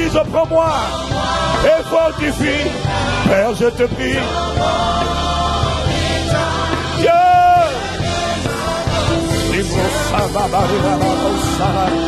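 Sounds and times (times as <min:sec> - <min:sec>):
steady bass accompaniment: 0:00.0 - 0:12.0
voices holding a long chord: 0:00.0 - 0:12.0.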